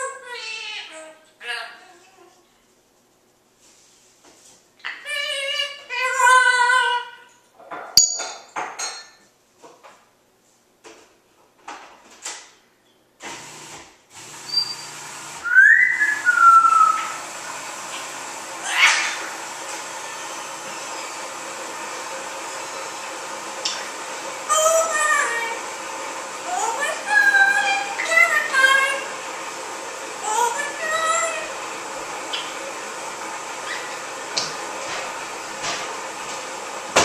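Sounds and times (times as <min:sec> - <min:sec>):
parrot whistling and calling: 0:14.5 - 0:17.2, 0:18.6 - 0:19.3, 0:33.6 - 0:34.0.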